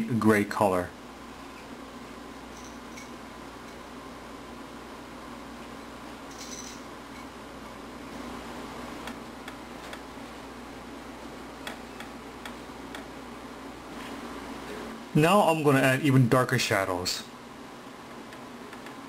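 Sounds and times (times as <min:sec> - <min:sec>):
faint hum: 0:00.0 - 0:19.0
low hiss: 0:00.0 - 0:19.0.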